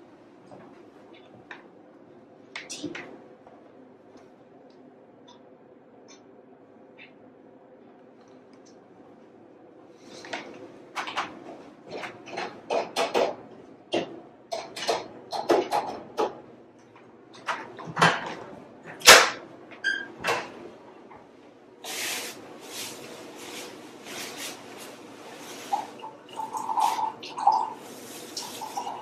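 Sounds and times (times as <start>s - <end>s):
rustling scraping noise: 21.9s - 26.0s.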